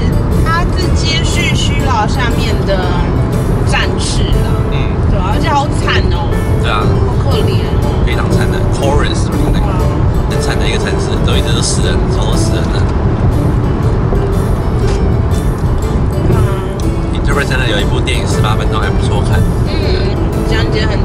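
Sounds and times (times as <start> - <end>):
background music: 0.0 - 21.0
car interior rumble: 0.0 - 21.0
man talking: 6.6 - 7.1, 8.0 - 12.9, 17.1 - 20.2.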